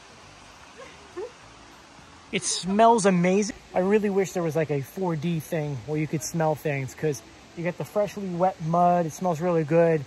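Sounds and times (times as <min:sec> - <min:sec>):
rain hissing: 0:00.0 - 0:10.0
rushing mountain stream: 0:00.0 - 0:10.0.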